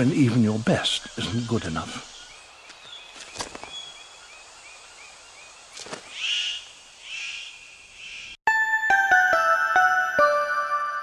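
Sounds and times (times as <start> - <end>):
bird calls: 0.0 - 8.4
chiming mallet jingle: 8.5 - 11.0.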